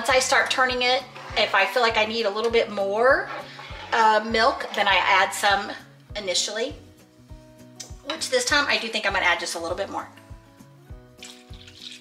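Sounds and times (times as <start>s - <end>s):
milk pouring into a skillet: 11.1s - 12.0s.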